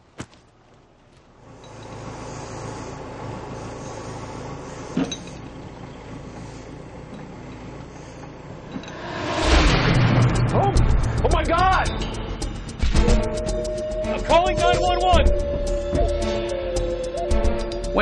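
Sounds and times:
diesel engine running: 1.4 - 18.0
loud rushing noise: 8.8 - 12.8.

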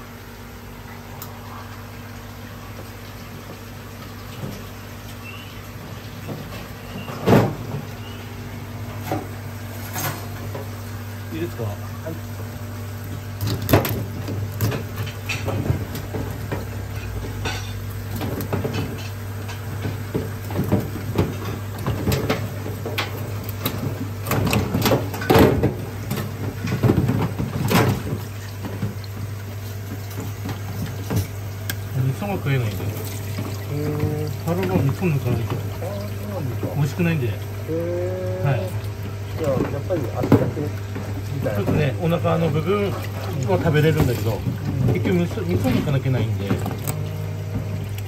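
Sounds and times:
steady low hum: 0.0 - 48.0
water running into sink: 11.3 - 48.0.

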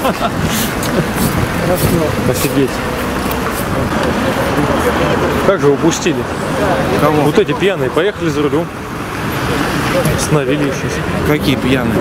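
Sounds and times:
indistinct voices: 0.0 - 12.0
road traffic: 0.0 - 12.0.

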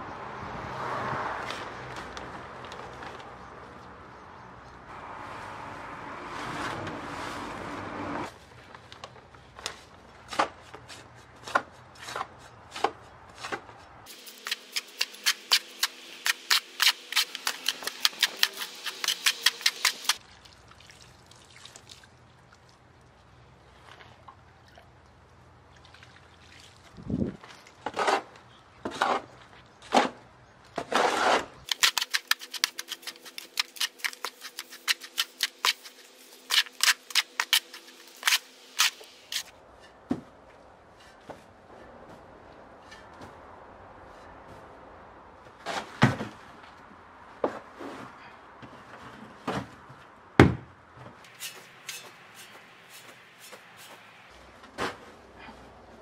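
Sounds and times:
hoe scraping soil in tub: 30.8 - 39.6, 51.3 - 54.0.

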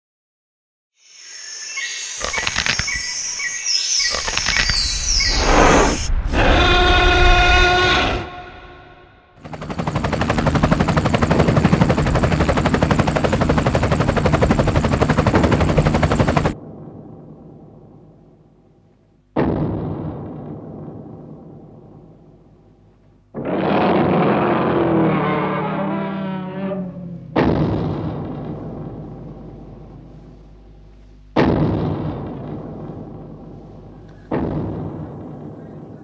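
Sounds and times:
gliding whistling tones: 4.5 - 7.6.

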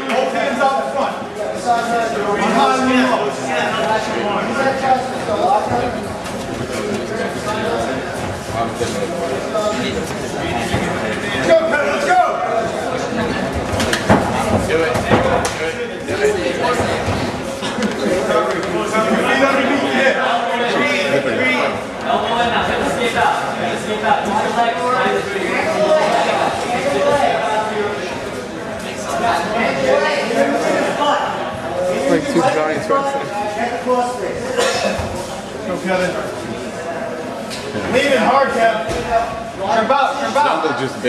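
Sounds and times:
background chatter: 0.0 - 41.0
people talking and calling out: 0.0 - 41.0.

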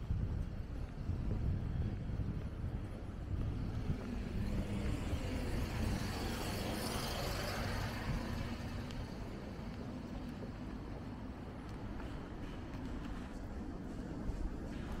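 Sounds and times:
low traffic rumble: 0.0 - 15.0
vehicle passing on road: 3.2 - 15.0.

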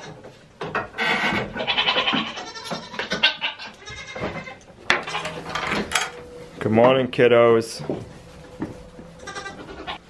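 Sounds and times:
goats bleating: 1.6 - 5.4, 9.2 - 10.0.

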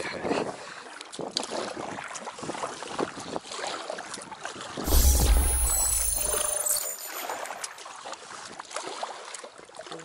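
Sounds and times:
oars splashing in water: 1.0 - 6.2, 7.2 - 10.0.

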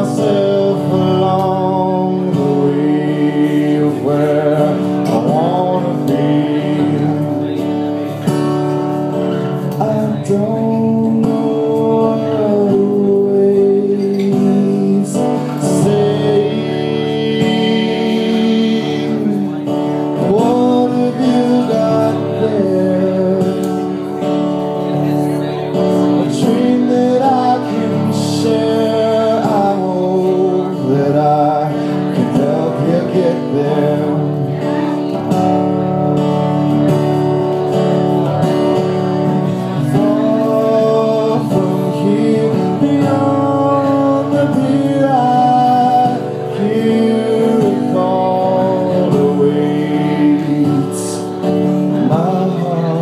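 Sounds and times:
acoustic guitar chords: 0.0 - 53.0
man singing: 0.0 - 53.0.

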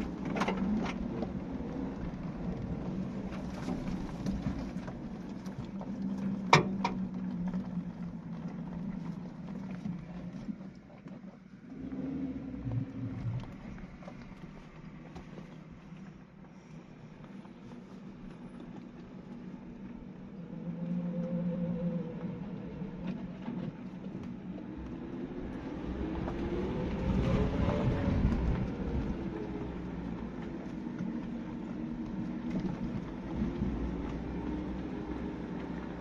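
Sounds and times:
road noise: 0.0 - 36.0
car engine revving: 24.7 - 36.0.

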